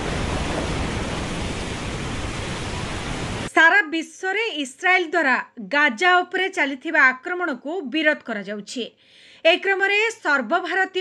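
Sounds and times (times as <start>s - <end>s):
rain hissing: 0.0s - 3.5s.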